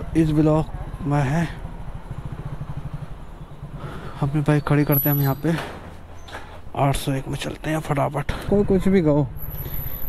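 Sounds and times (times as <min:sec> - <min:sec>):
motorcycle engine running at low revs: 0:00.0 - 0:05.4.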